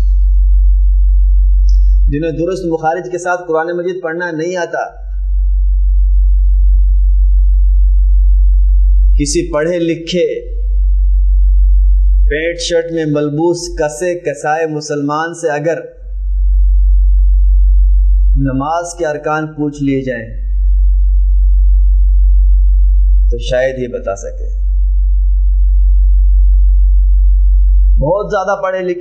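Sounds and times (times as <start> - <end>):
loud electrical hum: 0.0 - 29.0
man's voice: 2.1 - 5.0, 9.2 - 10.6, 12.3 - 15.9, 18.4 - 20.4, 23.3 - 24.6, 28.0 - 29.0.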